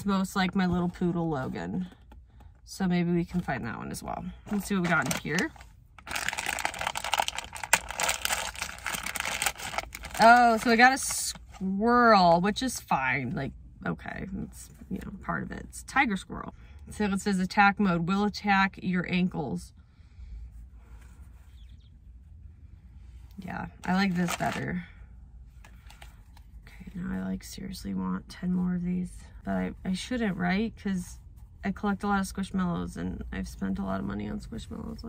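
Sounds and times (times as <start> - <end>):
low rumble in car cabin: 0.0 - 35.0
packaging crinkling: 4.9 - 10.7, 23.8 - 24.6.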